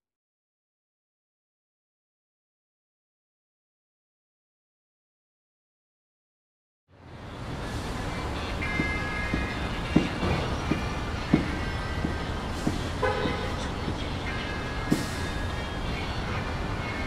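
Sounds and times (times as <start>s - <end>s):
traffic rumble: 6.9s - 17.0s.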